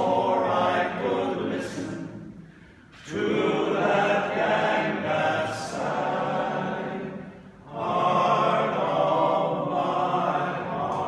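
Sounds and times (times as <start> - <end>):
barbershop chorus singing: 0.0 - 2.4, 3.0 - 11.0.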